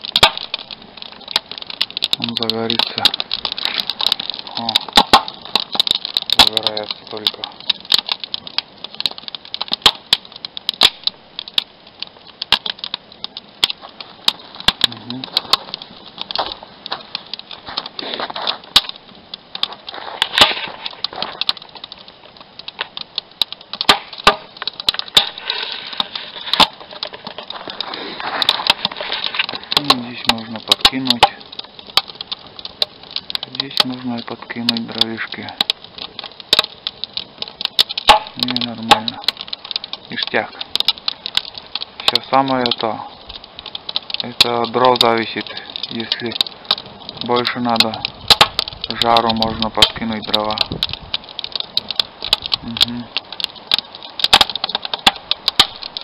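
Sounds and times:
wood fire crackling and popping: 0:00.0 - 0:56.0
man murmuring: 0:14.9 - 0:15.3.

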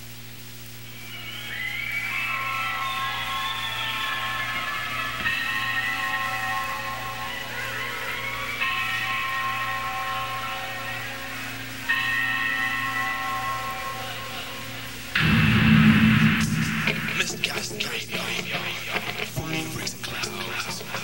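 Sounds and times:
electric guitar chords ringing: 0:05.2 - 0:19.8
heavy metal band playing: 0:15.2 - 0:19.3.

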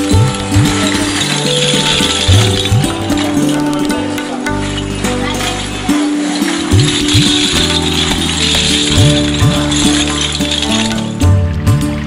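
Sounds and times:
background instrumental music: 0:00.0 - 0:12.0.

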